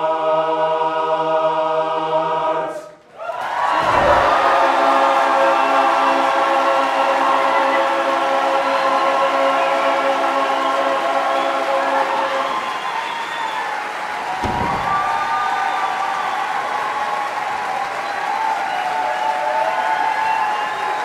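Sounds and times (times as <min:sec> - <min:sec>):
men's barbershop chorus singing: 0:00.0 - 0:02.9, 0:03.7 - 0:12.8.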